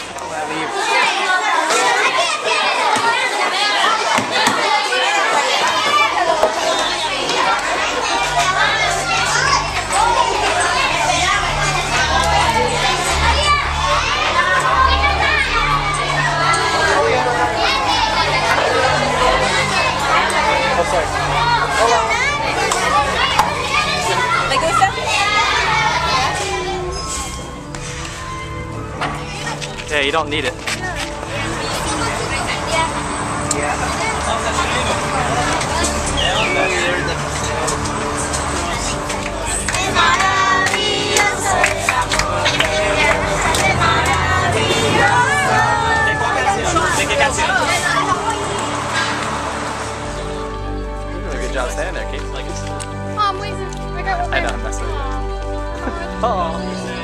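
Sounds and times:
children talking and calling out: 0:00.0 - 0:57.0.

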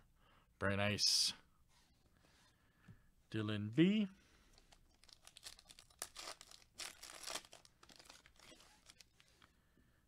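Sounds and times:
foil wrapper tearing and crinkling: 0:04.9 - 0:09.2.

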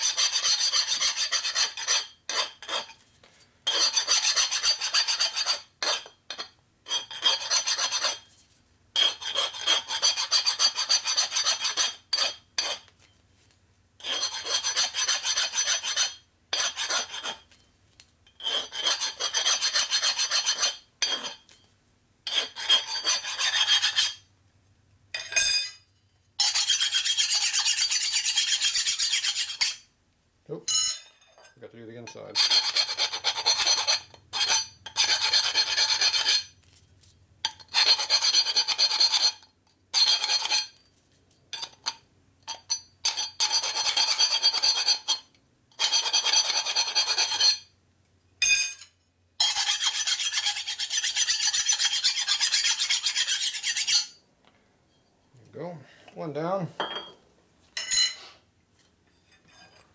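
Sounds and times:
hand file rasping on steel: 0:00.0 - 0:03.0, 0:03.7 - 0:08.3, 0:09.0 - 0:12.9, 0:14.0 - 0:17.5, 0:18.3 - 0:21.5, 0:22.3 - 0:24.3, 0:26.4 - 0:29.9, 0:32.3 - 0:36.5, 0:37.5 - 0:39.4, 0:40.0 - 0:40.8, 0:42.5 - 0:47.7, 0:49.4 - 0:54.2.

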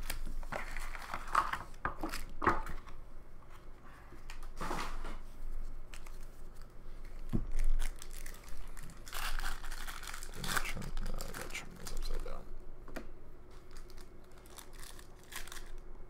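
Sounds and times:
card pack wrappers crinkling: 0:00.0 - 0:03.0, 0:05.9 - 0:12.4, 0:13.5 - 0:15.9
cards being handled: 0:05.8 - 0:12.4.

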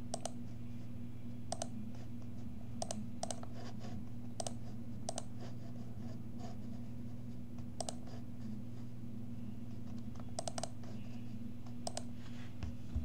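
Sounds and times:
steady low hum: 0:00.0 - 0:13.0
computer mouse clicks: 0:00.1 - 0:00.4, 0:01.5 - 0:01.7, 0:02.8 - 0:03.5, 0:04.4 - 0:05.3, 0:07.7 - 0:08.1, 0:09.9 - 0:10.8, 0:11.6 - 0:12.1.

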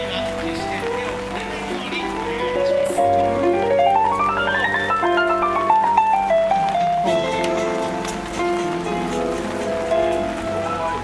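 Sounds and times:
music with held notes: 0:00.0 - 0:11.0
rain pattering on umbrellas: 0:00.0 - 0:11.0.

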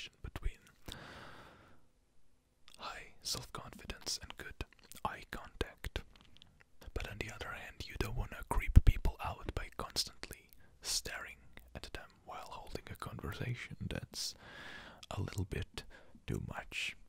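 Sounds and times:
man whispering: 0:00.0 - 0:00.9, 0:02.7 - 0:14.4, 0:15.0 - 0:17.0.

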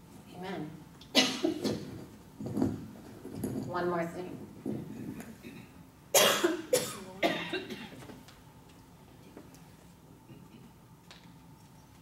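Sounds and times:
woman coughing: 0:01.1 - 0:01.9, 0:05.5 - 0:08.0.

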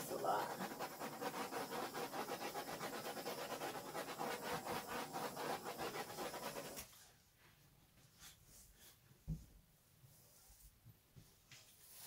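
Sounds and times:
torch flame hissing: 0:00.0 - 0:06.8.

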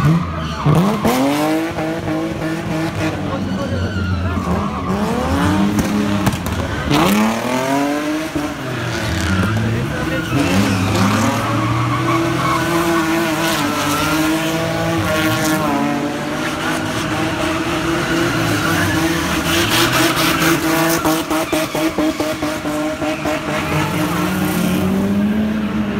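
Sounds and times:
race car engines revving: 0:00.0 - 0:25.9.

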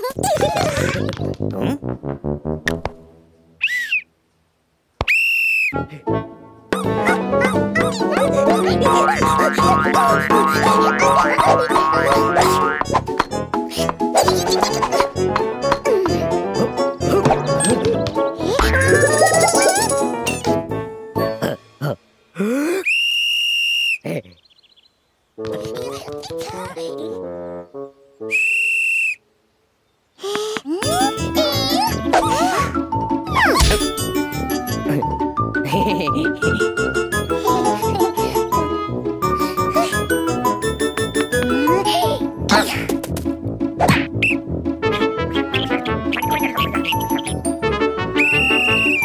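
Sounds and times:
bouncy cartoon music: 0:00.0 - 0:03.2, 0:05.8 - 0:22.0, 0:25.4 - 0:27.9, 0:30.7 - 0:49.0
sports whistle blast: 0:22.9 - 0:24.0, 0:28.3 - 0:29.2, 0:48.2 - 0:49.0
referee's whistle blast: 0:48.2 - 0:49.0.

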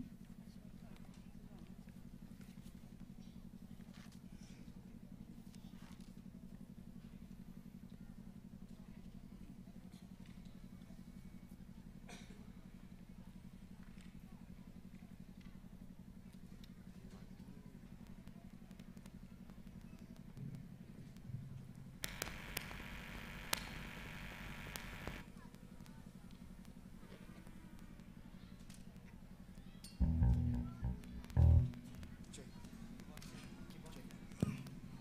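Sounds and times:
faint low pulsing hum: 0:22.0 - 0:25.3, 0:30.0 - 0:33.2
faint ticks: 0:22.0 - 0:29.2.

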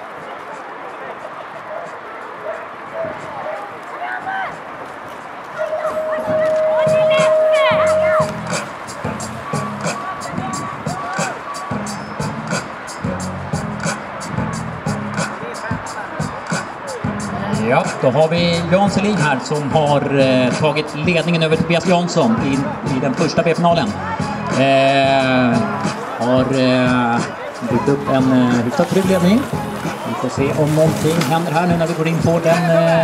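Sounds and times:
music with steady beat over loudspeakers: 0:05.8 - 0:33.0.

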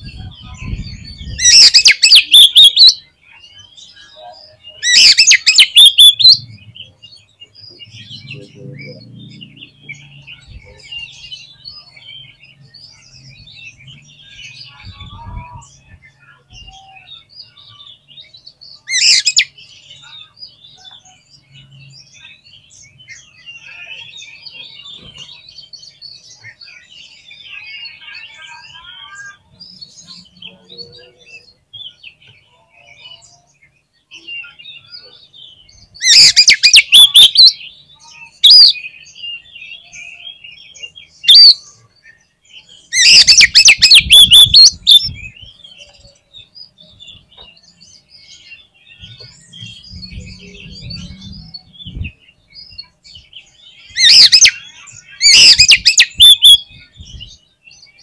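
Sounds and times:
bird singing: 0:00.0 - 0:58.0
soft bird twittering: 0:00.0 - 0:58.0.

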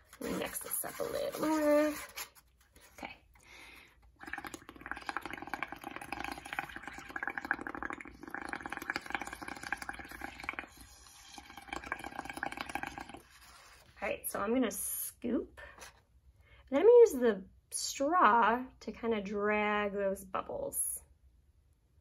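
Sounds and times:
bubbling gurgle through a straw: 0:04.1 - 0:13.7.

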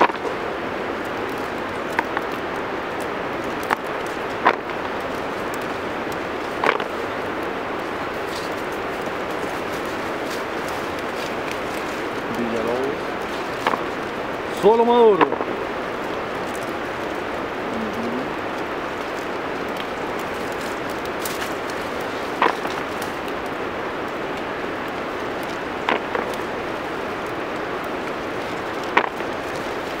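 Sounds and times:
rushing outdoor hiss: 0:00.0 - 0:30.0.

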